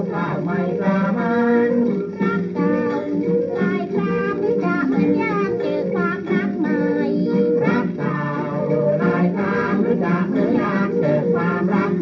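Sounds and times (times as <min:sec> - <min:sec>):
person singing over instruments: 0:00.0 - 0:12.0.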